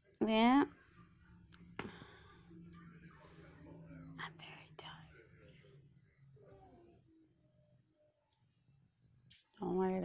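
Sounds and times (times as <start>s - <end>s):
faint low hum: 0.0s - 10.0s
woman whispering: 3.9s - 5.4s.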